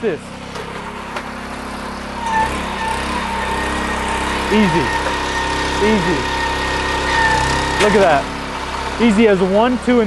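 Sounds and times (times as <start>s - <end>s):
small hoist engine running: 0.0s - 10.0s
steady whine: 0.5s - 10.0s.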